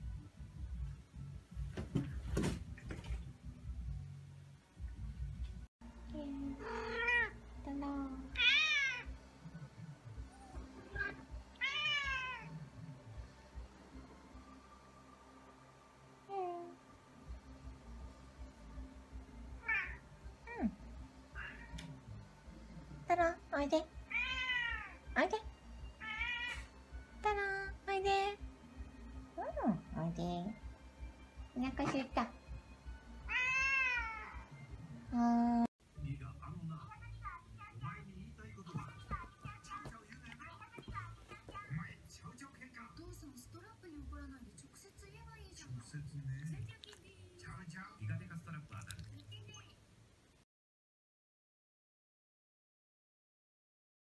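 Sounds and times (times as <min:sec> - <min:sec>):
cat meowing: 0:06.6 - 0:07.4, 0:08.4 - 0:09.1, 0:10.3 - 0:12.6, 0:19.6 - 0:20.0, 0:21.4 - 0:21.9, 0:24.1 - 0:25.0, 0:26.0 - 0:26.7, 0:33.3 - 0:34.4.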